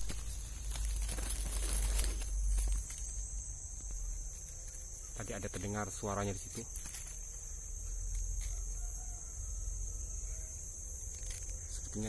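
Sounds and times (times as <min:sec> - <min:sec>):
insect chorus drone: 0:00.0 - 0:12.0.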